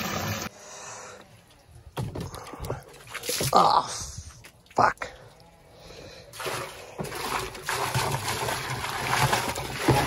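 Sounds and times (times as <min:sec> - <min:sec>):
plastic bucket knocks and thuds: 0:07.0 - 0:10.0.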